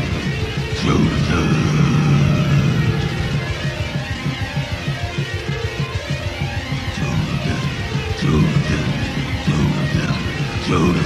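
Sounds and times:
low drone: 0:00.0 - 0:11.0
wall of distorted noise: 0:00.0 - 0:11.0.

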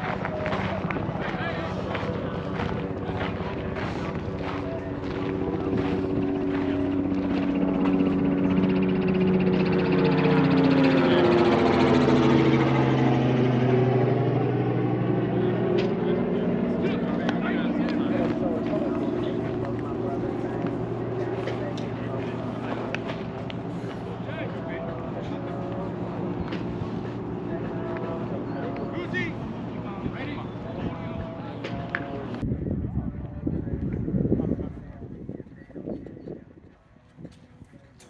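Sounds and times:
aircraft engine drone passing overhead: 0:00.0 - 0:38.0.

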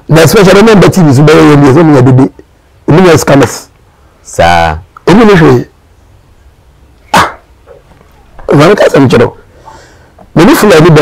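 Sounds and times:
dog barking: 0:07.1 - 0:07.9.

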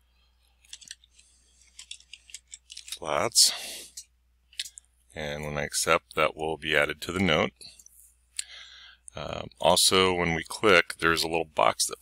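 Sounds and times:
computer keyboard typing: 0:01.7 - 0:02.9.

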